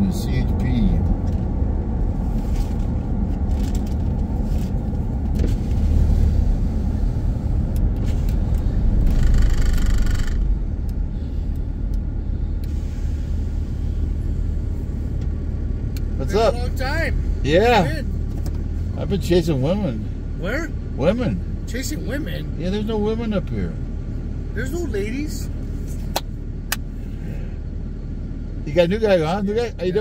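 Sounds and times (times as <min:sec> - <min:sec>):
car engine and tyre rumble: 0:00.0 - 0:30.0.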